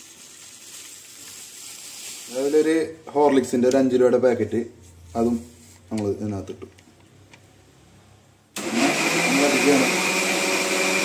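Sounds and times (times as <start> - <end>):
sugar pouring into milk: 0.0 - 2.6.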